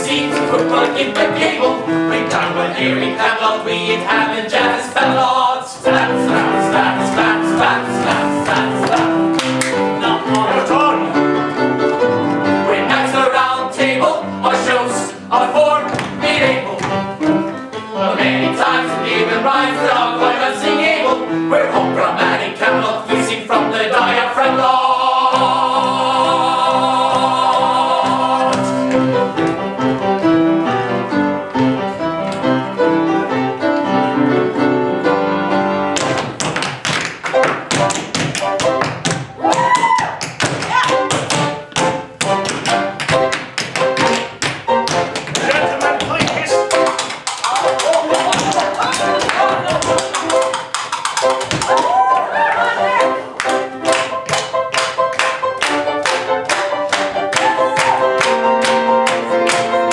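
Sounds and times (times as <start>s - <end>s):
tap shoes on wooden stage: 0.0s - 1.5s, 5.7s - 10.8s, 15.6s - 17.6s, 28.0s - 29.7s, 36.0s - 52.3s, 52.9s - 59.9s
piano accompaniment: 0.0s - 59.9s.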